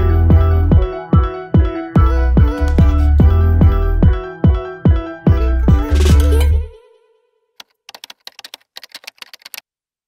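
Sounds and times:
computer keyboard keystroke clicks: 0:07.6 - 0:09.6.

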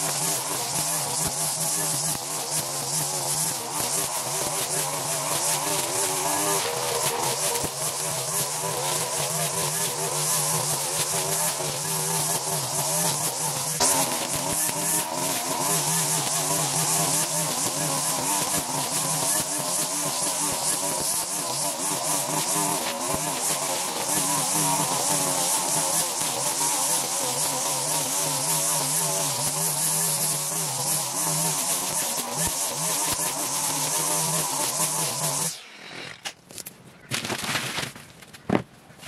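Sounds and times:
string trimmer cutting grass: 0:00.0 - 0:36.5.

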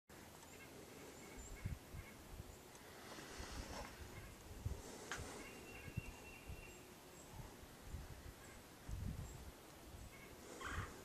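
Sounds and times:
faint bird chirps: 0:00.4 - 0:03.1, 0:05.2 - 0:11.0.

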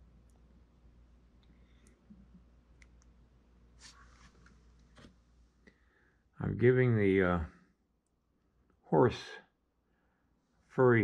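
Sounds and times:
scratchy rustle: 0:03.8 - 0:05.1.

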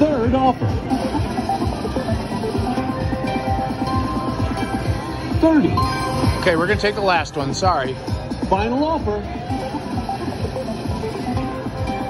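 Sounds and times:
jingly slot machine music: 0:00.0 - 0:12.0.

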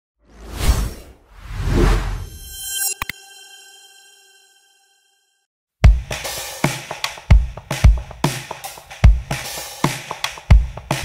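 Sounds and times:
whoosh sound effect: 0:00.3 - 0:04.3.

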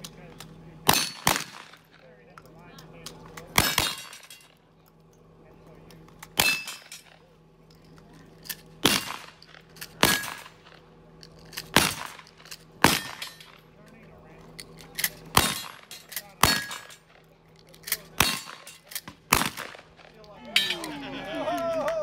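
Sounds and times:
metallic ring of steel targets: 0:00.8 - 0:02.0, 0:03.4 - 0:04.6, 0:06.2 - 0:07.3, 0:08.4 - 0:13.7, 0:14.8 - 0:21.0
gunshots: 0:00.9 - 0:01.9, 0:08.8 - 0:10.8, 0:11.7 - 0:13.4, 0:15.3 - 0:17.2, 0:18.2 - 0:20.2
low voices: 0:13.6 - 0:22.0.

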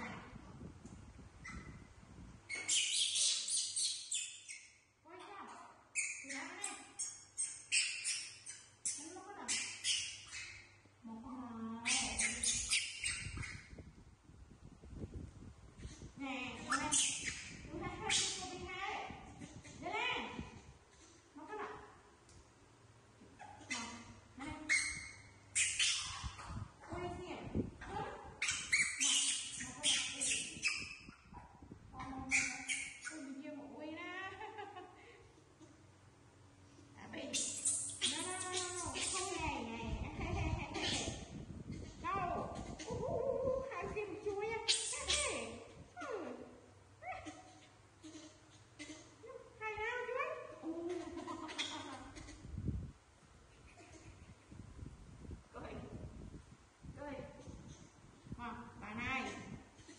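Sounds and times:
baby macaque calling: 0:02.5 - 0:04.8, 0:05.9 - 0:10.8, 0:11.8 - 0:13.8, 0:16.6 - 0:18.6, 0:23.4 - 0:26.6, 0:27.8 - 0:31.3, 0:32.0 - 0:33.3, 0:37.3 - 0:39.5, 0:44.6 - 0:46.2, 0:50.0 - 0:52.4
baby monkey crying: 0:24.7 - 0:26.6, 0:28.4 - 0:31.3, 0:37.3 - 0:39.4, 0:40.7 - 0:43.7, 0:47.0 - 0:49.2, 0:50.0 - 0:52.5.

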